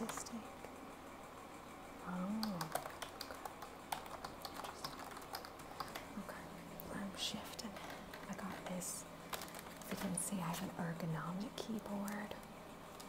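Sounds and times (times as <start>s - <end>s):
computer keyboard typing: 2.1s - 6.3s, 7.3s - 10.6s, 11.7s - 12.3s.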